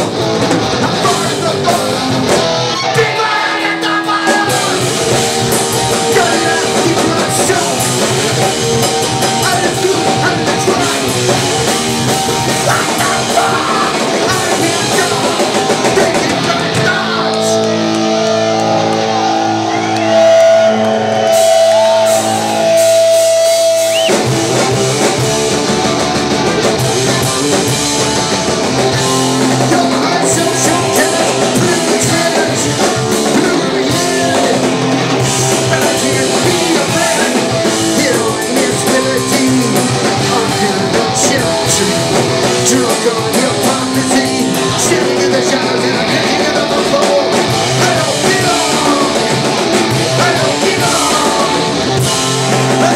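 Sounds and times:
bass guitar: 0.0s - 52.9s
drum kit: 0.0s - 52.9s
electric guitar: 0.0s - 52.9s
punk band playing fast and loud: 0.0s - 52.9s.

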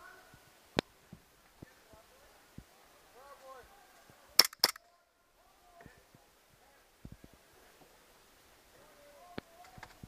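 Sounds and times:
airsoft pistol shots: 4.4s - 4.8s.

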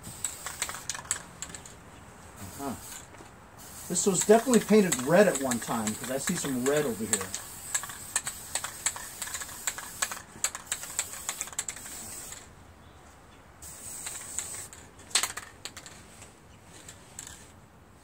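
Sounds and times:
aerosol spray paint hissing: 0.0s - 1.1s, 2.4s - 12.4s, 13.6s - 14.8s.

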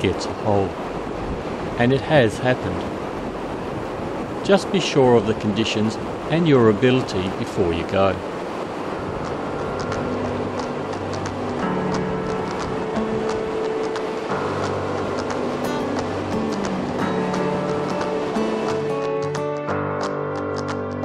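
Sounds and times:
river water rushing: 0.0s - 21.0s
background music held notes: 8.8s - 21.0s.

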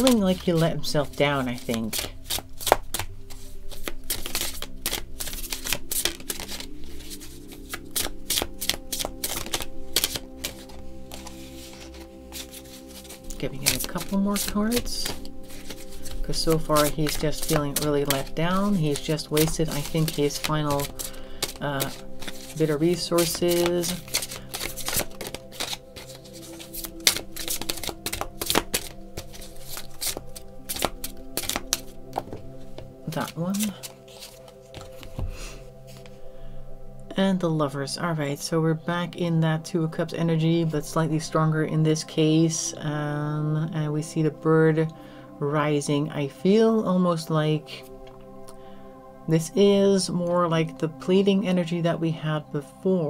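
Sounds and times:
cards being shuffled: 0.0s - 36.2s.

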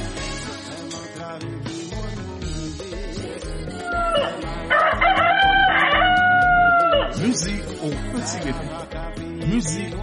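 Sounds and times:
music with a steady beat: 0.0s - 10.0s
rooster crowing: 3.7s - 7.2s.

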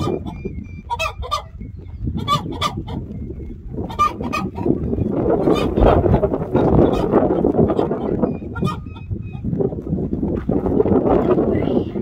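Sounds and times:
chickens squawking: 0.0s - 9.5s.

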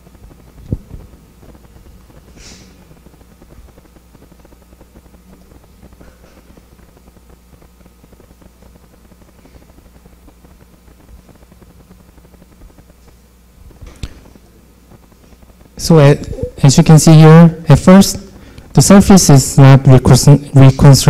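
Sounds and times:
low hum and faint hiss: 0.0s - 21.0s.

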